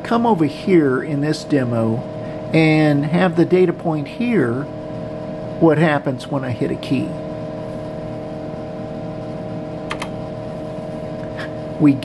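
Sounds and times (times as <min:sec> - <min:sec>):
computer humming and whirring: 0:00.0 - 0:12.0
key clicks: 0:09.9 - 0:10.1.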